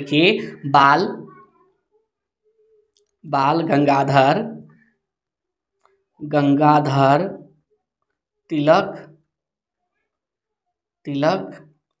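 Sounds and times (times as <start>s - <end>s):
man speaking: 0.0s - 1.3s.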